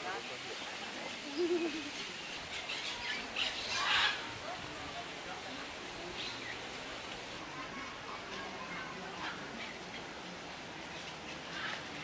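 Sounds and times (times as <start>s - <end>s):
birds chirping: 0.1s - 4.4s.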